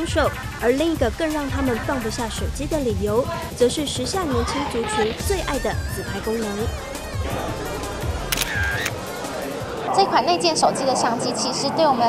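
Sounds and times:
background music: 0.0s - 12.0s
camera shutter click: 8.3s - 9.0s.

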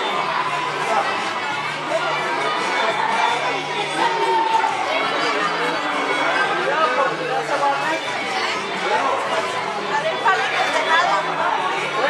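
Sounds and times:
group of people chattering: 0.0s - 12.0s.

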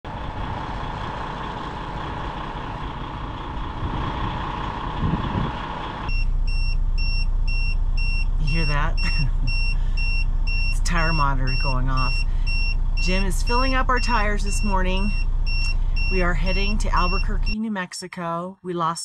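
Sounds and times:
diesel engine idling: 0.0s - 17.6s
warning beeps: 6.1s - 17.6s.

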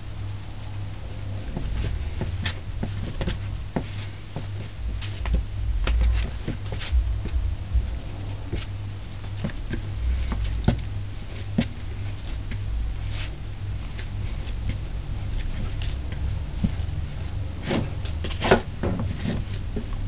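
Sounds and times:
steady low hum: 0.0s - 20.0s
dough kneaded by hand: 0.5s - 20.0s.

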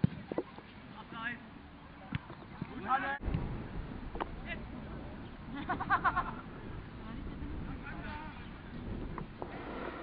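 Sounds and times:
low rumble: 3.2s - 9.3s.

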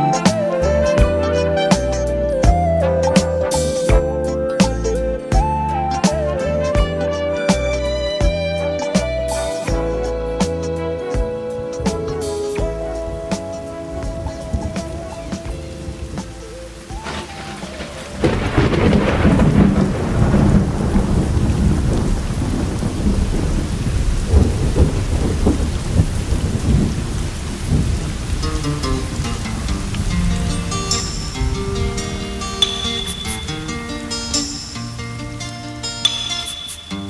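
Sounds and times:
song music: 0.0s - 23.7s, 27.6s - 37.0s
thunder rumbling: 0.0s - 36.5s
steady rain: 0.0s - 37.0s.

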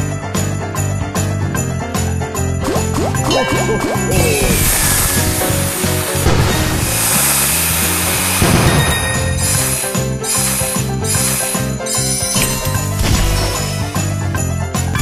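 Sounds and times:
festive holiday music with sleigh bells: 0.0s - 15.0s
rushing sound effect: 2.6s - 8.8s.

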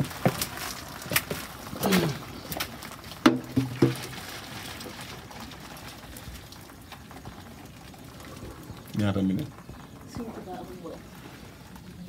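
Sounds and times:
water pouring and splashing: 0.0s - 12.0s.

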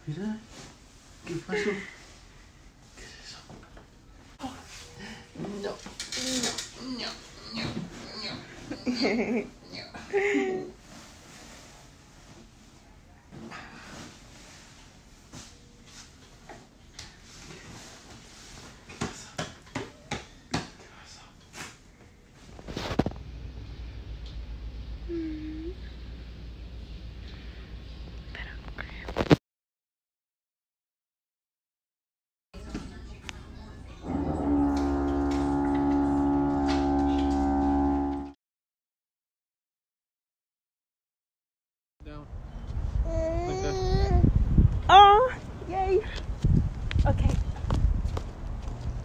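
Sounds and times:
steady pitched tone: 34.0s - 38.4s.

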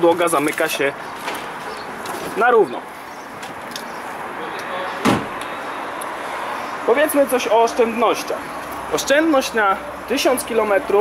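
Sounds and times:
outdoor background noise: 0.0s - 11.0s
car tailgate thump: 5.0s - 5.4s.

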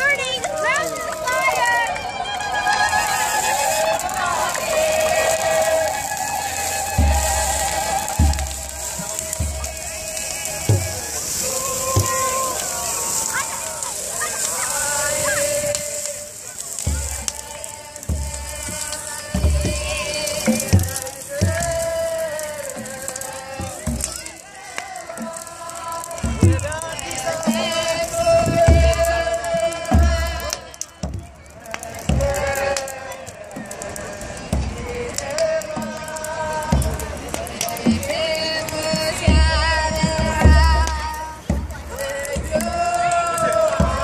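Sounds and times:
group chanting: 0.6s - 44.0s
deep church drum beats: 4.9s - 13.3s, 15.6s - 24.4s, 26.1s - 32.9s, 33.5s - 44.0s.

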